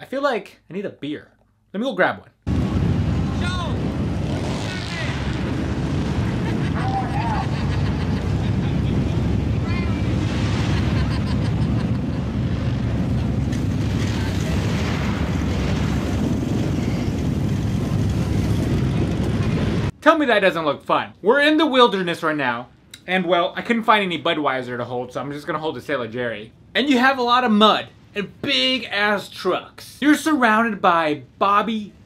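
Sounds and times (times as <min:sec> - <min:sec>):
truck engine running loud: 0:03.1 - 0:19.9
spectators shouting: 0:06.4 - 0:10.3.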